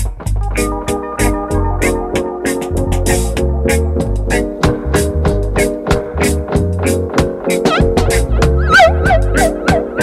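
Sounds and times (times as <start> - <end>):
reggae music: 0.0 - 10.0.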